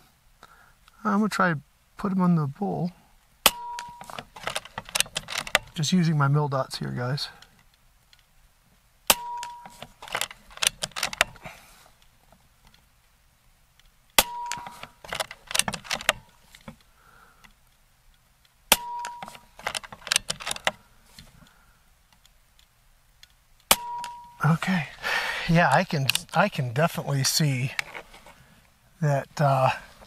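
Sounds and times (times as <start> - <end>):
metallic clicks of rifle lever: 3.5 - 5.8, 9.1 - 11.4, 13.7 - 20.8, 21.4 - 24.4, 25.7 - 26.4.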